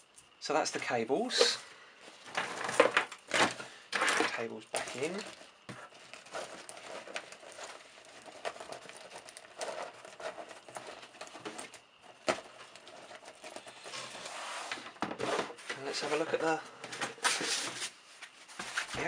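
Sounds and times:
cables rustling and knocking: 0.0s - 16.3s.

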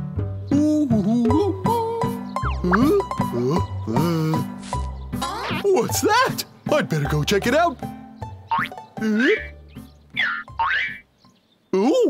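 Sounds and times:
light children's music: 0.0s - 12.0s
cartoon boing sound effects: 5.2s - 5.6s, 8.5s - 9.5s, 10.2s - 11.0s.

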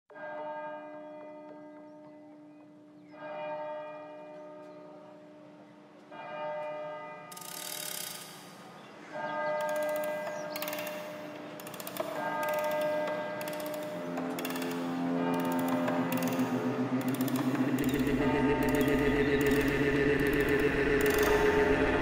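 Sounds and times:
hissing swell: 14.6s - 22.0s
bell-like electronic tone: 15.3s - 22.0s
low held note: 15.3s - 22.0s.

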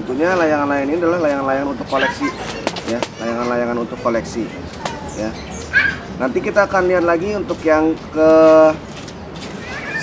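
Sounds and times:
man speaking: 0.0s - 5.5s
low background noise: 0.0s - 10.0s.

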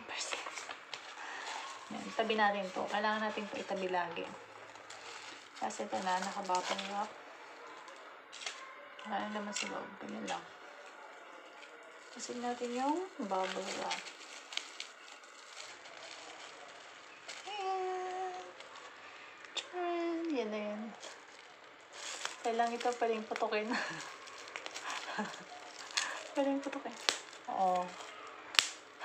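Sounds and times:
woman's voice: 0.0s - 0.7s, 1.5s - 4.4s, 5.6s - 7.1s, 9.0s - 10.5s, 12.1s - 14.0s, 17.5s - 18.5s, 19.6s - 21.0s, 22.4s - 24.1s, 24.9s - 28.0s
paper rustling: 0.1s - 19.8s, 20.9s - 29.0s.

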